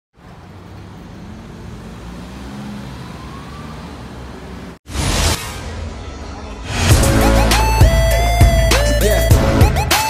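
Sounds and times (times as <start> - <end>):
passing vehicles rumble: 0.2 - 4.8.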